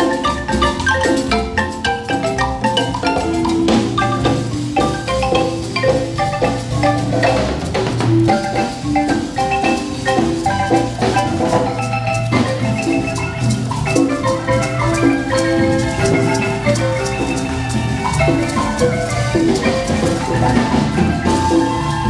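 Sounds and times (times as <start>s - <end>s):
marimba music: 0.0s - 22.0s.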